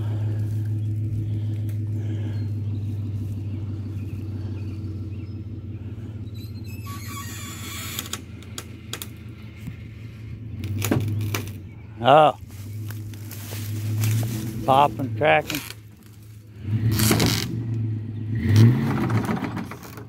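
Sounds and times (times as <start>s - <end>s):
truck engine running: 0.0s - 20.0s
crackling and snapping brush: 12.4s - 16.4s.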